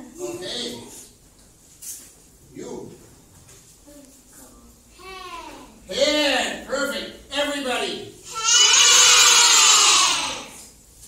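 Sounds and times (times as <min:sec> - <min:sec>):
children shouting: 0:08.3 - 0:10.6.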